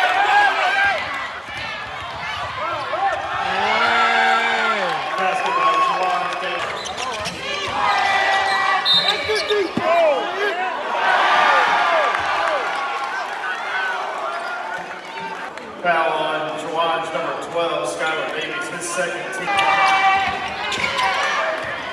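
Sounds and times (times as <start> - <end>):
voices in gym: 0.0 - 12.6
sneaker squeaks: 6.6 - 9.8, 20.5 - 21.4.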